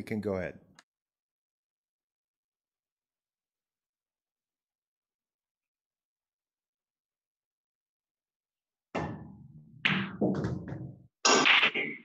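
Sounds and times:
pool balls knocking together: 9.0 - 11.1.

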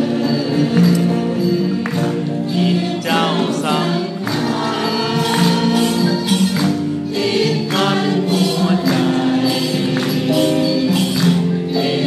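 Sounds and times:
people singing: 0.0 - 12.0
regular struck beat: 0.0 - 12.0
wooden xylophones playing: 0.0 - 12.0.

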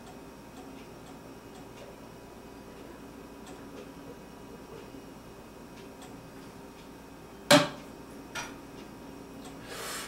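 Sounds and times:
short breathy hiss: 9.6 - 10.0.

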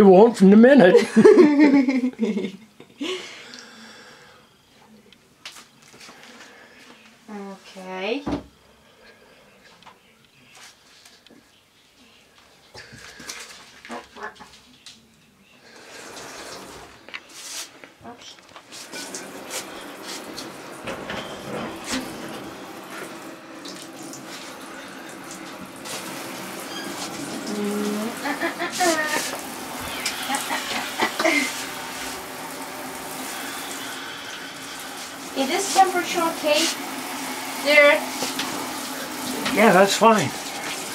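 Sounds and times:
shower water rushing onto tray: 15.9 - 17.0, 18.8 - 40.9.

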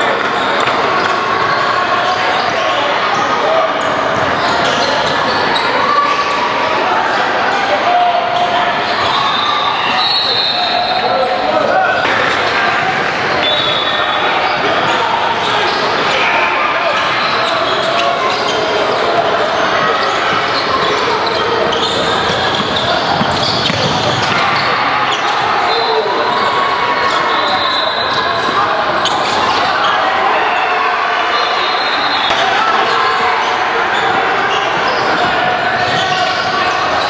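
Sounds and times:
players and spectators voices: 0.0 - 37.0.

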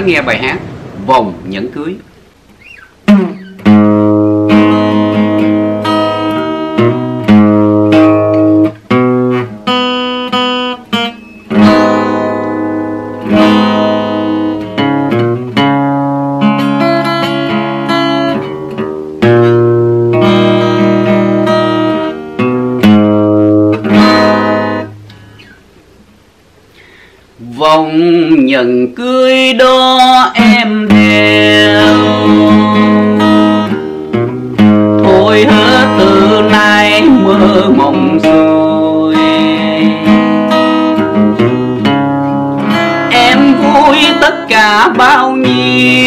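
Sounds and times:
acoustic guitar: 0.0 - 46.0.

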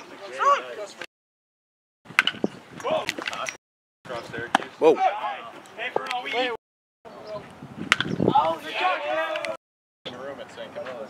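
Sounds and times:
sharp pop: 7.9 - 8.2.

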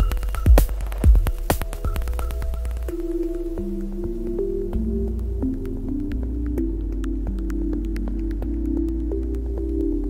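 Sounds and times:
glitchy clicks: 0.0 - 3.4
low sustained synth bass: 0.0 - 10.0
soft synth notes: 0.0 - 10.0.

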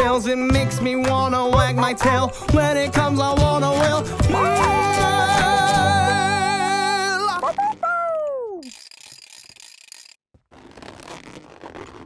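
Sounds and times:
mechanical clicking and whirring: 8.6 - 10.2.

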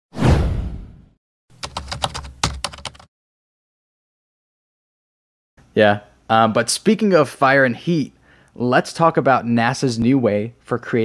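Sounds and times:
whoosh hit with low boom: 0.1 - 1.2.

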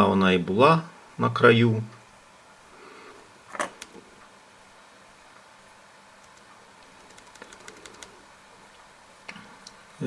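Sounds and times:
mouse scroll wheel ticking: 6.2 - 8.2.

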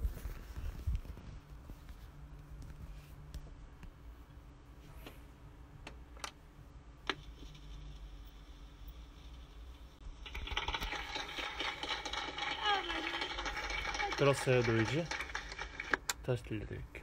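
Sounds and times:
vinyl record crackle and hiss: 0.0 - 5.2, 7.0 - 16.1.

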